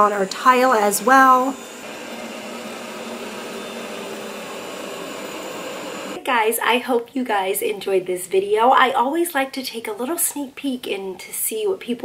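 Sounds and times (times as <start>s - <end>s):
robot vacuum whirring: 0.0s - 6.2s.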